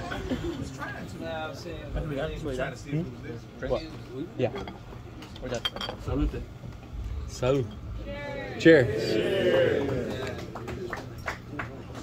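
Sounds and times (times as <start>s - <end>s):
dishes and cutlery clinking: 4.4s - 6.2s.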